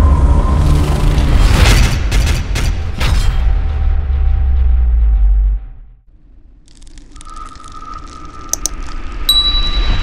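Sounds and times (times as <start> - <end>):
mouse clicks: 8.5 - 8.8
notification bell ding: 9.3 - 10.0.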